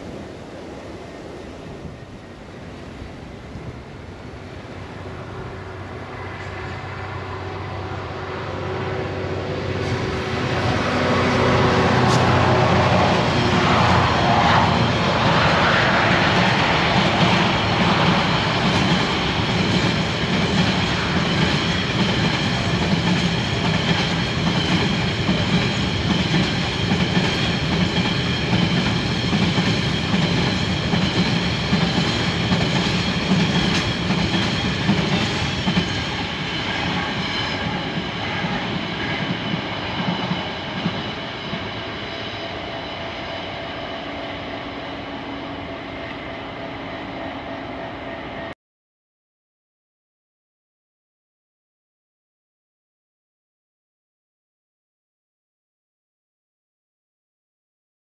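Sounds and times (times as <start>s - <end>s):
freight train passing: 0.0s - 48.6s.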